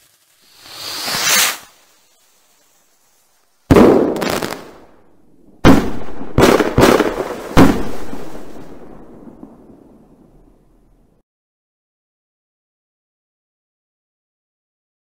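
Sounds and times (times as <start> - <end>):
firework crackle: 0.0 - 10.9
firework bangs: 0.0 - 11.0.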